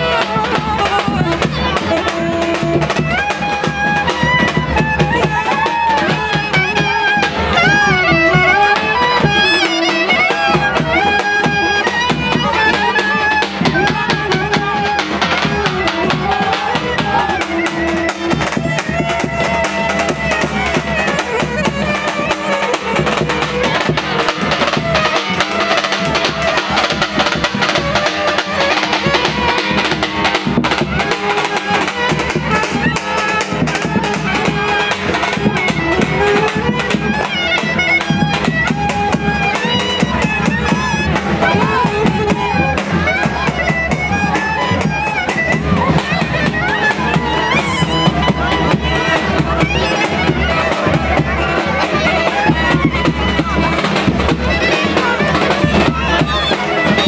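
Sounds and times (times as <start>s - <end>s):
crowd chatter: 0.0s - 57.0s
reed wind instrument melody: 0.0s - 57.0s.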